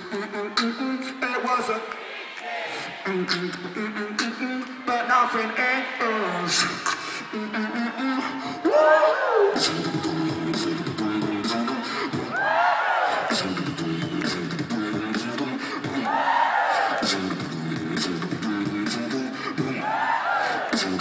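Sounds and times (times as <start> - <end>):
beatboxing: 0.0 - 2.0, 2.6 - 21.0
vocal swoops: 5.5 - 12.4, 13.0 - 21.0.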